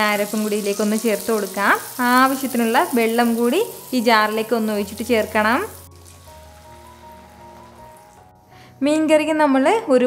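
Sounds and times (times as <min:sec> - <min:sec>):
frying sizzle in hot oil: 0:00.0 - 0:08.6.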